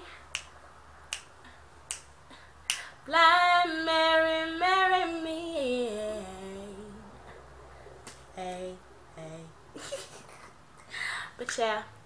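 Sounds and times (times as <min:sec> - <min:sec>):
finger snaps: 0:00.3 - 0:01.3, 0:01.9 - 0:02.9
woman singing unaccompanied: 0:03.0 - 0:07.2, 0:08.3 - 0:09.6.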